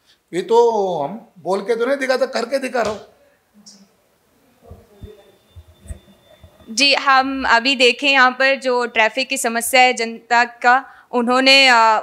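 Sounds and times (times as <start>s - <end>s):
faint steady high tone: 3.6s - 9.8s
microphone handling thumps: 4.6s - 6.8s.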